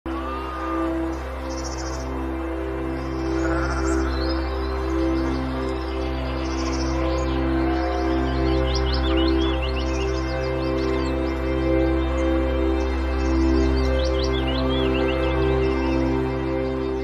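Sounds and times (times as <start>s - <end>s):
birds chirping: 0.1s - 16.4s
soft ambient music: 0.1s - 17.0s.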